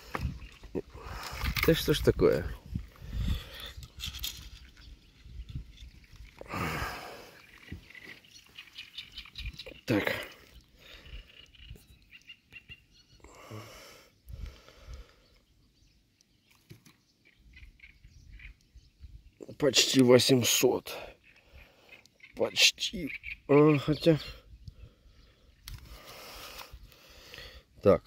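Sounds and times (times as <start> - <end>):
man muttering: 9.9 - 10.4.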